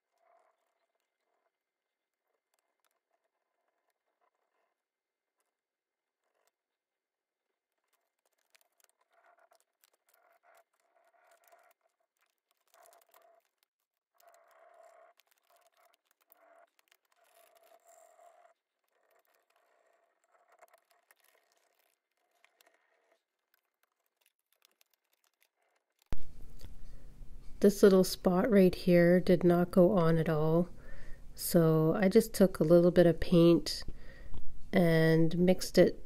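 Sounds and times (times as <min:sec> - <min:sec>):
faint scratching and crinkling: 0:00.0 - 0:36.0.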